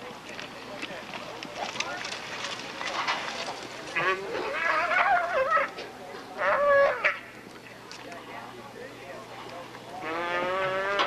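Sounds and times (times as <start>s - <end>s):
calf bawling: 3.9s - 5.8s, 6.4s - 7.2s.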